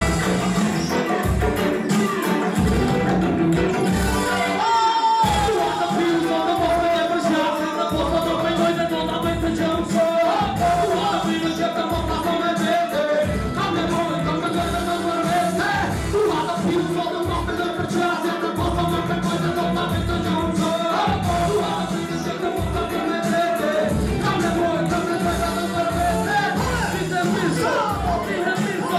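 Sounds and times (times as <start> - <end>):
hip hop music over loudspeakers: 0.0 - 28.9.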